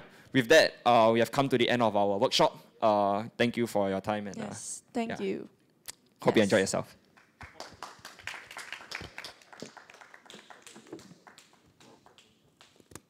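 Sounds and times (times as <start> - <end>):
audience applause: 7.2 - 12.8.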